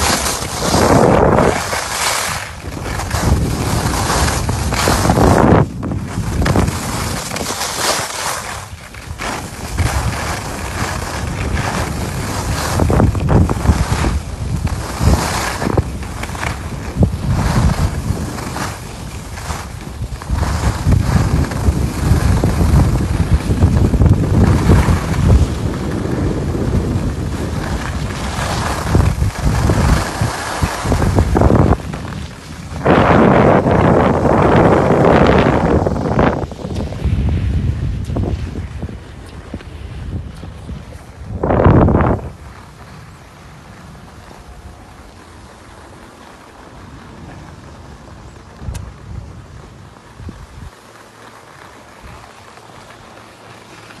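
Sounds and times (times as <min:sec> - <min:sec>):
skis hissing on packed snow: 0:00.0 - 0:54.0
wind rushing over microphone: 0:00.0 - 0:54.0.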